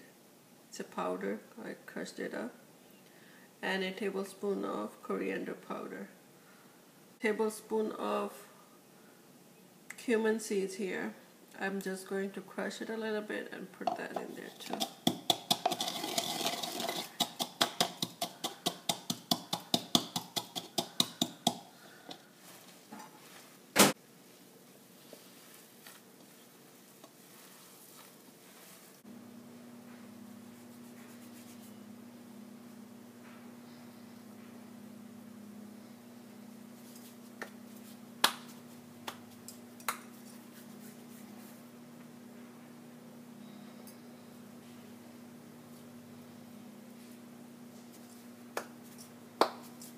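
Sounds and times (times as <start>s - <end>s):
pestle pounding in wooden mortar: 14.7s - 21.7s
steady low hum: 26.4s - 49.9s.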